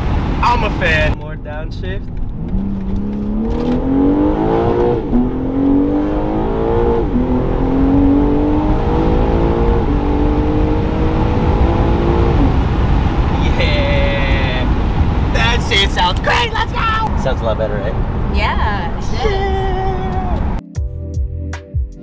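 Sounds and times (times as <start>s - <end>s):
car engine accelerating: 0.0s - 19.0s.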